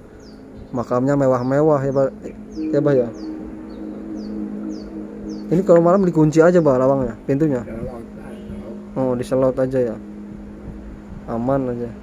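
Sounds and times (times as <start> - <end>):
small bird chirping: 0.0 - 10.4
steady low hum: 0.0 - 12.0.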